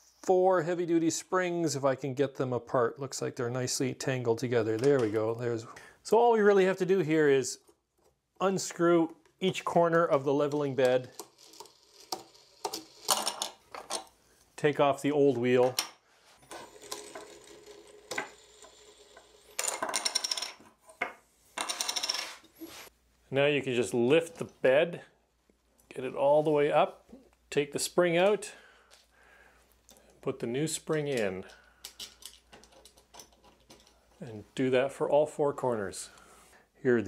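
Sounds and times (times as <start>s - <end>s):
faint metal clicks and scrapes: 31.0s - 34.3s.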